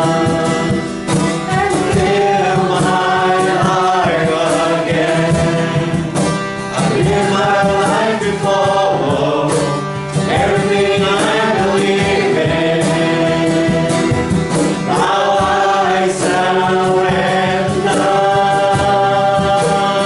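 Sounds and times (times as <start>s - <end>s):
group singing worship song: 0.0s - 20.0s
strummed acoustic guitar: 0.0s - 20.0s.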